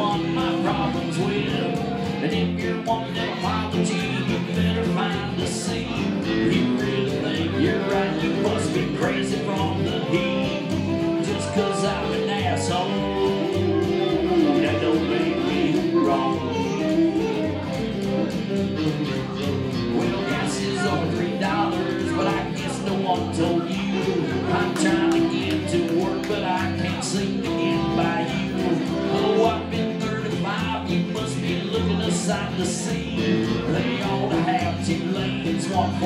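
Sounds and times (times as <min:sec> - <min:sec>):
electric guitar: 0:00.0 - 0:36.0
live country band playing: 0:00.0 - 0:36.0.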